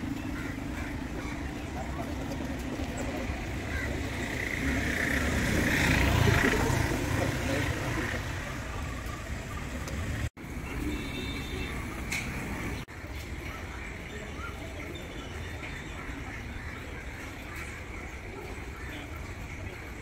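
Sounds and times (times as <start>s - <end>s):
vehicle passing: 1.6s - 10.3s
people's voices: 5.8s - 10.0s.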